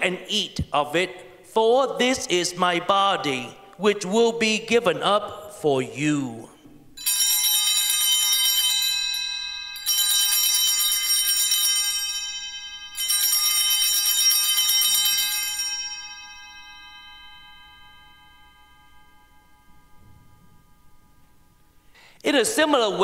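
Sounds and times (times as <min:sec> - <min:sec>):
small hand bells ringing: 0:07.0 - 0:19.8.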